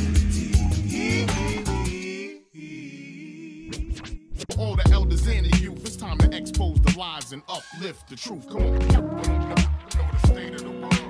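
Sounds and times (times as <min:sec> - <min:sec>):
rapping over a beat: 0:04.5 - 0:11.0.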